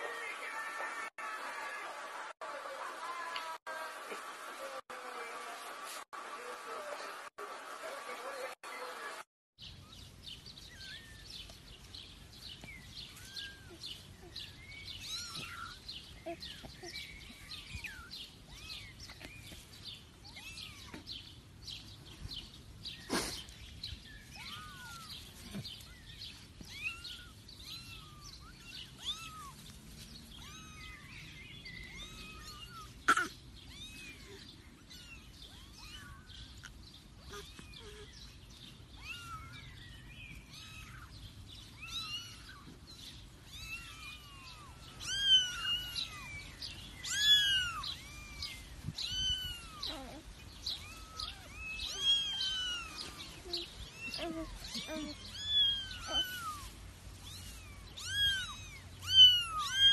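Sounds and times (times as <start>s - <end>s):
kittens mewing: 43.4s - 59.9s.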